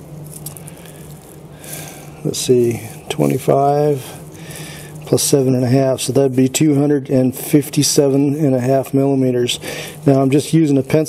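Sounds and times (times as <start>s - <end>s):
faint steady low hum: 0.0s - 11.0s
soft hiss: 0.0s - 11.0s.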